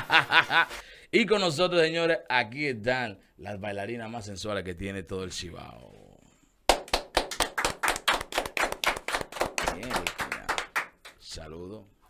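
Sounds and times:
hand clapping: 0:06.7 - 0:11.2.

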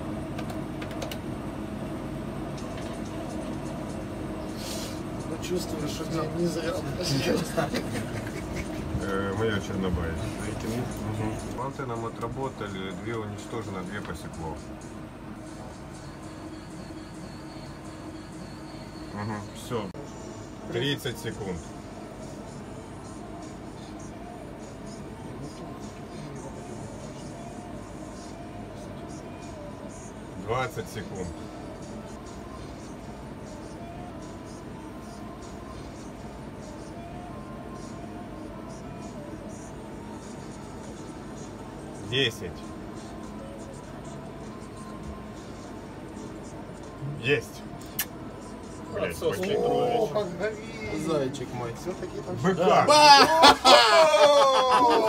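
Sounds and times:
background hum and hiss: 0:00.0 - 0:55.0
sharp click: 0:47.8 - 0:48.2
man exclaiming: 0:49.3 - 0:51.1, 0:52.6 - 0:55.0.

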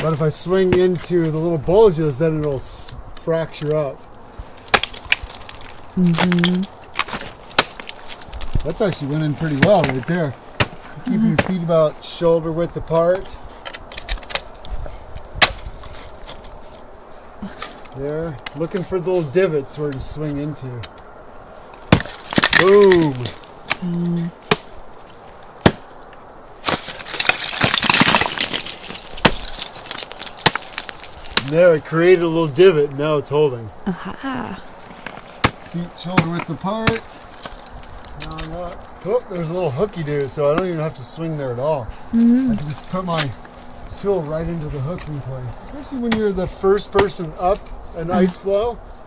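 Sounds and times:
ice axe striking ice: 0:00.0 - 0:01.2, 0:04.6 - 0:11.7, 0:21.8 - 0:24.8, 0:25.5 - 0:26.0, 0:26.6 - 0:31.8, 0:35.0 - 0:37.7, 0:46.0 - 0:47.3
ice chips clicking and tinkling: 0:26.7 - 0:31.4.

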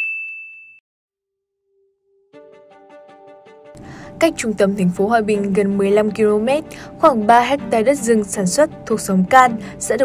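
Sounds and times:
high bell-like ding: 0:00.0 - 0:00.8.

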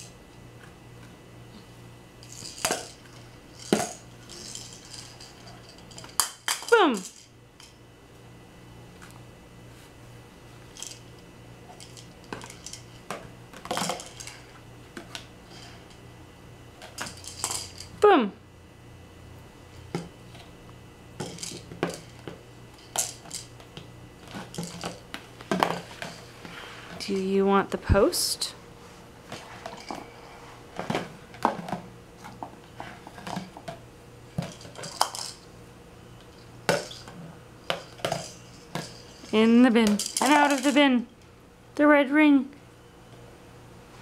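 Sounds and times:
plastic toys clattering on wood floor: 0:02.2 - 0:07.3, 0:11.8 - 0:13.0, 0:13.6 - 0:14.5, 0:16.8 - 0:17.9, 0:21.2 - 0:23.5, 0:24.3 - 0:26.2, 0:34.4 - 0:35.4, 0:36.7 - 0:40.8
plastic rings clacking in bin: 0:02.2 - 0:07.7, 0:11.8 - 0:14.5, 0:16.8 - 0:17.9, 0:24.2 - 0:26.2, 0:33.1 - 0:35.4, 0:36.3 - 0:40.9.

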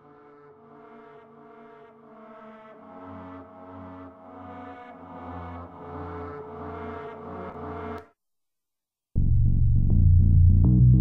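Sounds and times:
pulsing synthesizer drone: 0:00.0 - 0:08.0.

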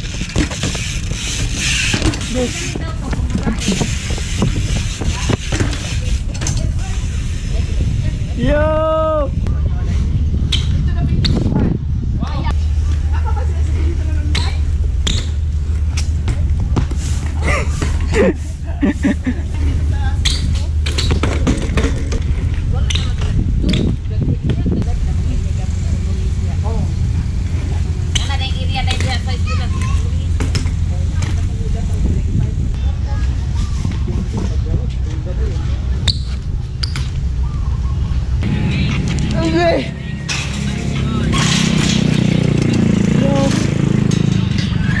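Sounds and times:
bike rolling over concrete: 0:00.0 - 0:08.4, 0:12.3 - 0:32.5
wind buffeting microphone: 0:00.0 - 0:40.0.

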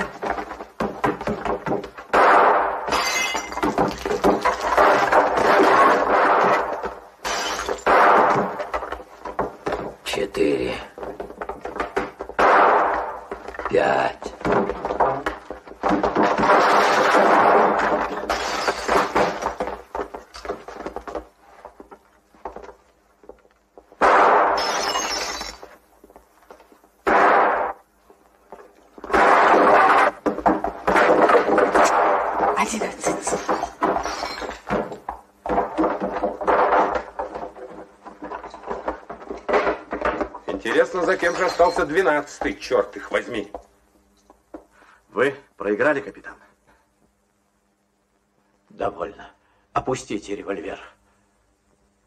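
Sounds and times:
glass breaking: 0:00.0 - 0:09.9, 0:12.0 - 0:13.4, 0:15.8 - 0:20.6, 0:24.0 - 0:25.8, 0:27.1 - 0:27.8, 0:29.1 - 0:37.6, 0:41.0 - 0:42.0
revolver shots: 0:07.7 - 0:08.6, 0:12.4 - 0:13.3, 0:24.0 - 0:25.6
man talking: 0:10.0 - 0:11.0, 0:13.6 - 0:14.4.

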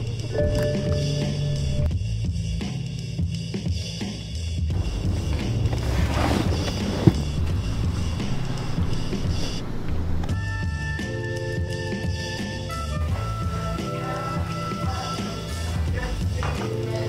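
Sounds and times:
background music with bass beat: 0:00.0 - 0:17.0
skateboard wheels rolling on asphalt: 0:04.7 - 0:10.4.

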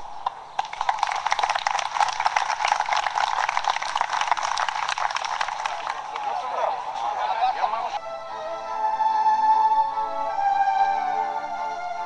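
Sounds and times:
crowd applauding: 0:00.6 - 0:07.8.

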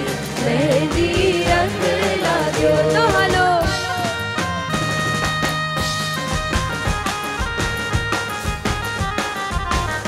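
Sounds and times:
band backing instruments: 0:00.0 - 0:10.0
steady drum beat: 0:00.0 - 0:10.0.

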